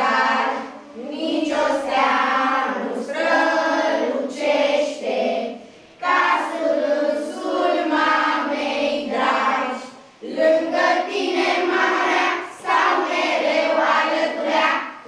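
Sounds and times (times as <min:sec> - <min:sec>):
children singing together: 0:00.0 - 0:15.0.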